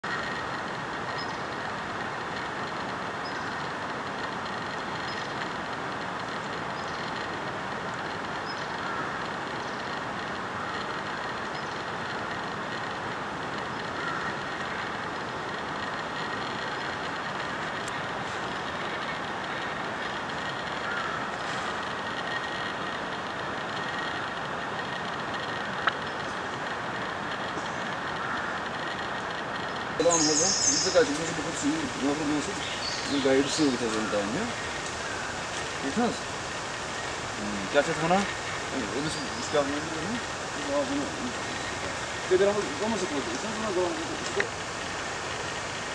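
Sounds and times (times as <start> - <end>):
steady rushing outdoor noise: 0.0 - 45.9.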